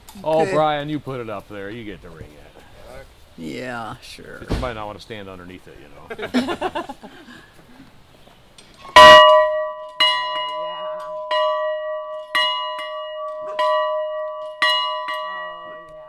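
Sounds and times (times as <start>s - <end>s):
large bell ringing: 9.0s - 16.0s.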